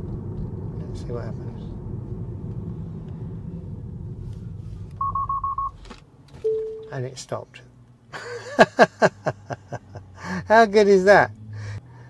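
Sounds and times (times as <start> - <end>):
man laughing: 8.1 - 10.5.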